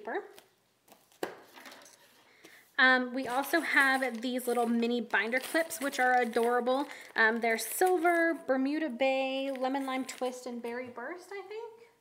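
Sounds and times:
plastic packaging crinkling: 0:03.2 - 0:10.7.

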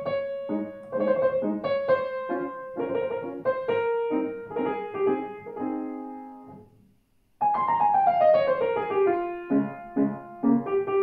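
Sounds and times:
grand piano playing: 0:00.0 - 0:06.7, 0:07.4 - 0:11.0.

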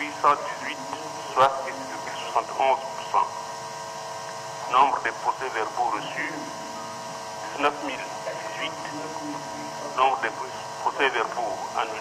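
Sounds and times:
person speaking: 0:00.0 - 0:03.3, 0:04.7 - 0:12.0
steady electrical hum: 0:00.0 - 0:12.0.

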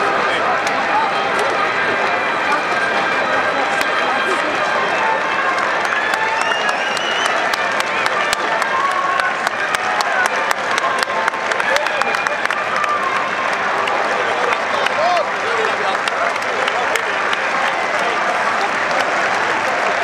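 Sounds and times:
crowd applauding: 0:00.0 - 0:20.0
crowd voices calling out: 0:00.0 - 0:20.0.

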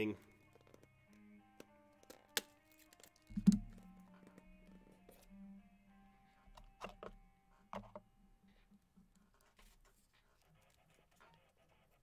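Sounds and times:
quiet background music: 0:00.0 - 0:12.0
dull thunk: 0:03.3 - 0:03.8.

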